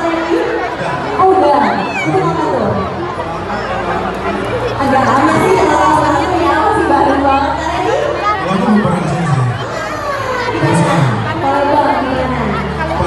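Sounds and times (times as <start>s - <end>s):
crowd chatter: 0.0s - 13.0s
voices over pa system: 4.8s - 13.0s.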